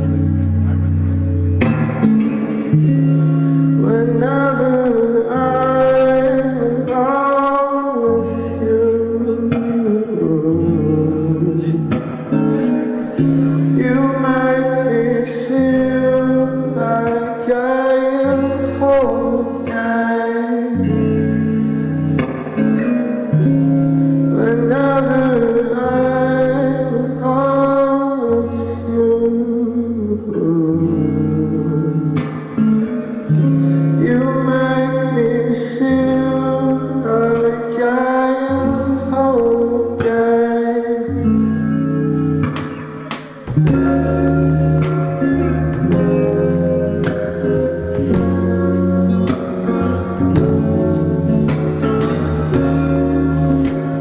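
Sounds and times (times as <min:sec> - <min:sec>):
rock band playing: 0:00.0 - 0:04.2, 0:11.9 - 0:14.4, 0:32.3 - 0:34.6, 0:41.6 - 0:54.0
bass notes: 0:00.0 - 0:20.0, 0:20.8 - 0:37.6, 0:41.2 - 0:54.0
electric guitar: 0:00.0 - 0:54.0
man singing: 0:02.0 - 0:21.8, 0:24.2 - 0:41.7.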